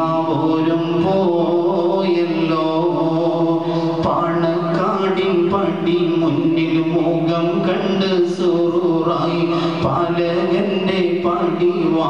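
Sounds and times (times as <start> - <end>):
man singing slow chant: 0.0 - 12.0.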